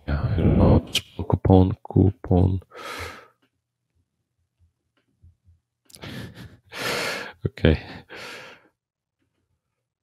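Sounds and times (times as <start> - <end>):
man speaking: 0.0 - 2.7, 7.3 - 8.2
man breathing and sighing: 2.7 - 3.5, 5.9 - 8.8.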